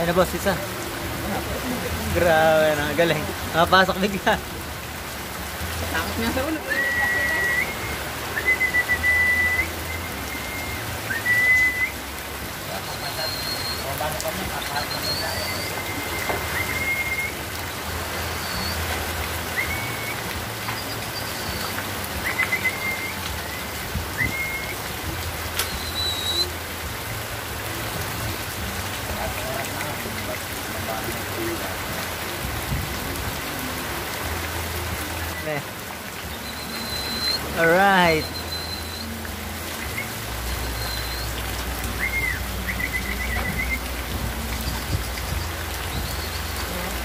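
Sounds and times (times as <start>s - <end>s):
rain on roofs and foliage: 0.0s - 47.0s
water running off roof: 0.0s - 47.0s.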